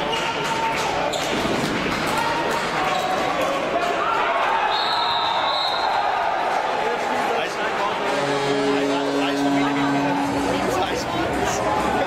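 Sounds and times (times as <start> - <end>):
crowd din with voices: 0.0 - 12.0
sustained pitched tones: 8.0 - 12.0.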